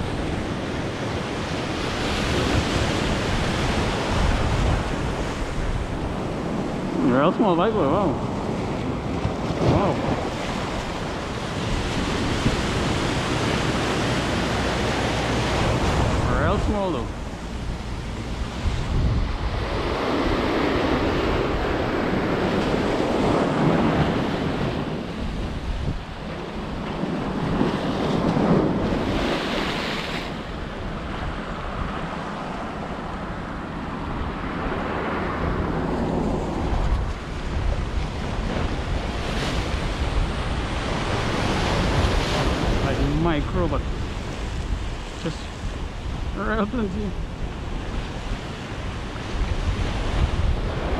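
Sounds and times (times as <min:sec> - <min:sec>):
ocean surf breaking over rocks: 0:00.0 - 0:50.9
wind buffeting microphone: 0:00.0 - 0:50.9.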